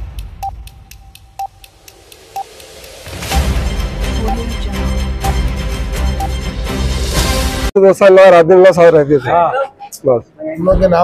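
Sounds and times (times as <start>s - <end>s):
countdown timer beeps: 0.3s - 6.4s.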